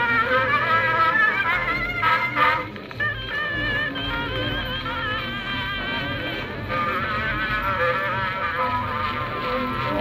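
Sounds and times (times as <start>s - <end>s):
thin phonograph music: 0.0s - 10.0s.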